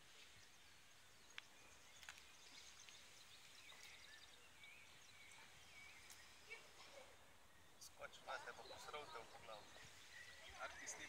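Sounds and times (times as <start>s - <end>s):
faint high chirps: 0.1s - 11.0s.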